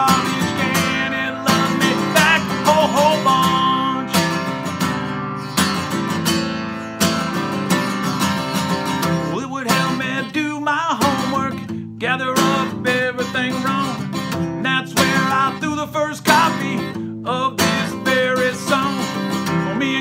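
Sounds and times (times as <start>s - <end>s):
man singing: 0.0s - 4.8s, 8.9s - 20.0s
acoustic guitar strumming: 0.0s - 20.0s.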